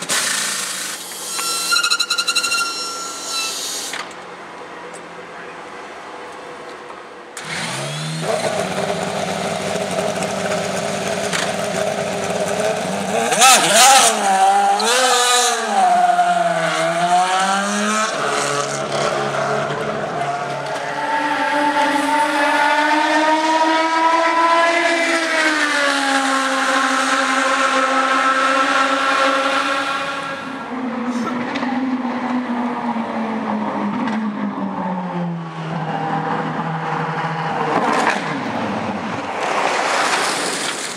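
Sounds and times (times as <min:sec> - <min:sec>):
racing engine revving and pulling away: 0:07.4 - 0:40.5.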